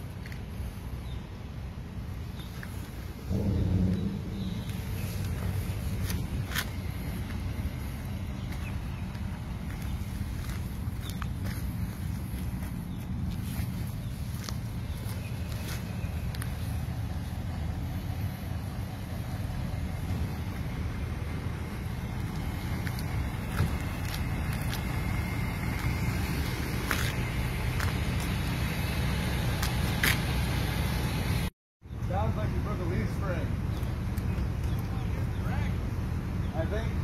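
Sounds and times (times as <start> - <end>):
low engine rumble: 0.0 - 37.0.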